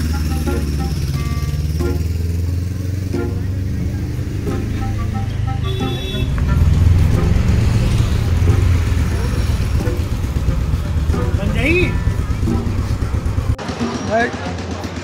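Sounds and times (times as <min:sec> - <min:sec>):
street traffic rumble: 0:00.0 - 0:15.0
faint voices: 0:02.6 - 0:15.0.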